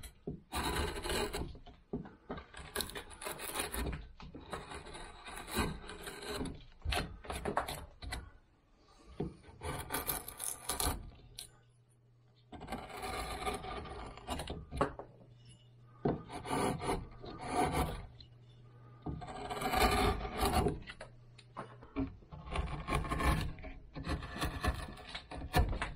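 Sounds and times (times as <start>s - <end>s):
carving tool scraping bark: 0.0s - 1.7s, 2.3s - 8.4s, 9.1s - 11.4s, 12.6s - 14.8s, 15.6s - 21.2s, 22.0s - 25.9s
faint low hum: 0.0s - 25.9s.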